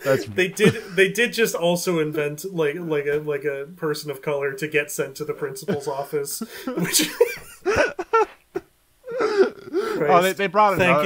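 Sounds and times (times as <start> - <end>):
drawn-out vocal sound: 0.0 - 0.4
person laughing: 0.0 - 1.2, 5.7 - 10.0
person speaking: 0.0 - 8.3, 9.1 - 11.0.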